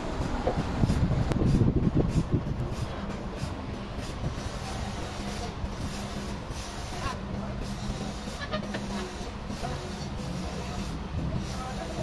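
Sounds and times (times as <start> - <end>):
forklift engine humming: 0.0 - 11.5.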